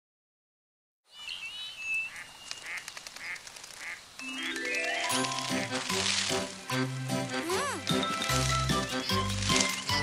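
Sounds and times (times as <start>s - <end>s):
xylophone-like rising notes: 4.2s - 6.2s.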